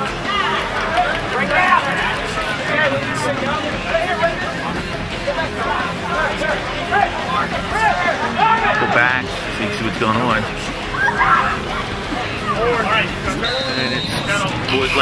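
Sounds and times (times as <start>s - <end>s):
many voices talking and calling: 0.0s - 15.0s.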